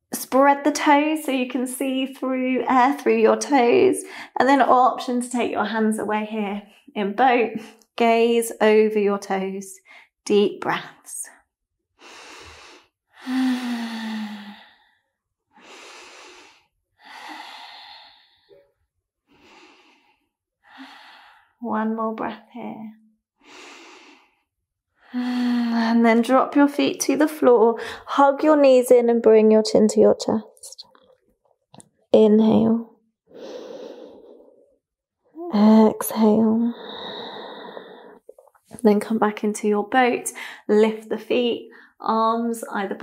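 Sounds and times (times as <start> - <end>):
woman breathing deeply: 12.0 - 21.6, 23.4 - 25.8, 33.3 - 34.7, 36.7 - 38.3.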